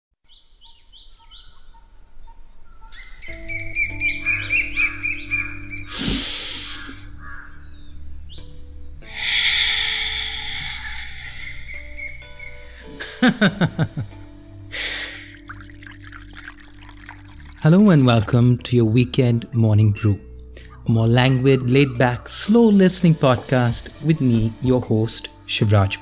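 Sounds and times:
birdsong chirping: 0:00.3 - 0:13.0, 0:19.4 - 0:23.7
soft music with long notes: 0:02.4 - 0:26.0.

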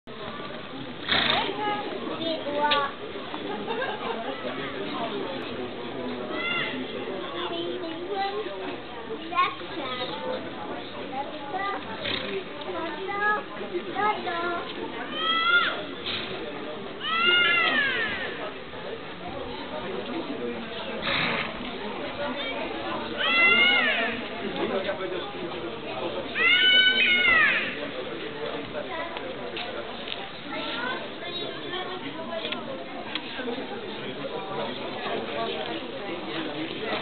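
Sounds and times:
people talking over one another: 0:00.0 - 0:37.0.

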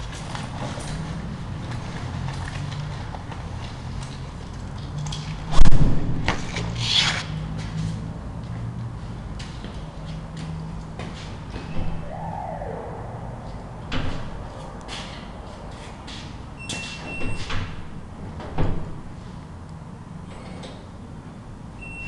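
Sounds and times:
low steady hum: 0:12.0 - 0:14.9.

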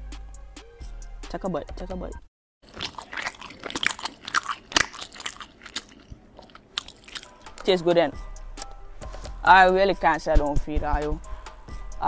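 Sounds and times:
chewing mouth clicks and smacks: 0:02.7 - 0:07.7.

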